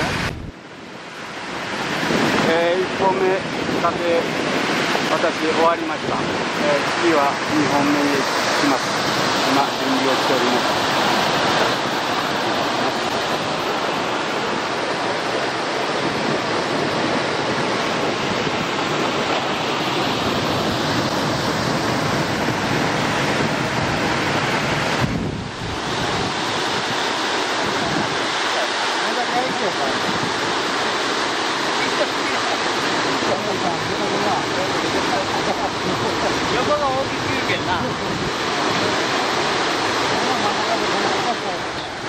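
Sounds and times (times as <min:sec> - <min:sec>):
river water rushing over rapids: 0:00.0 - 0:42.0.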